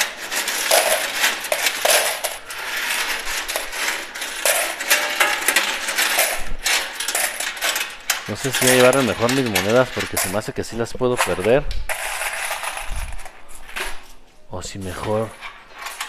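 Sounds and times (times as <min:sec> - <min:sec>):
coins clinking and sliding: 0:00.0 - 0:10.4, 0:11.2 - 0:14.0.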